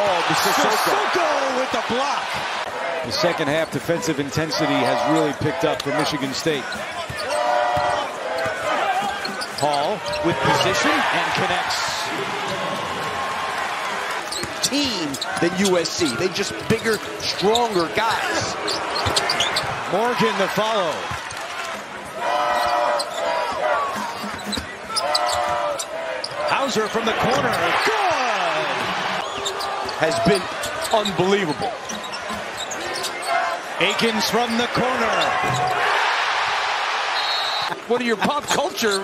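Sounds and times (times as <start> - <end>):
voices in arena: 0.0 - 39.0.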